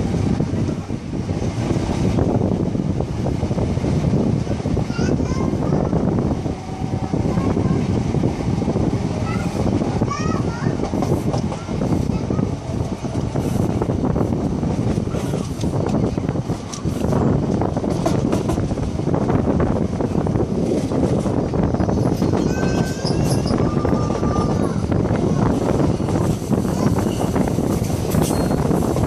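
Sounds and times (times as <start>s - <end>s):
train wheels rumbling on rails: 0.0s - 29.0s
thin high wheel squeal: 22.2s - 24.6s, 26.9s - 29.0s.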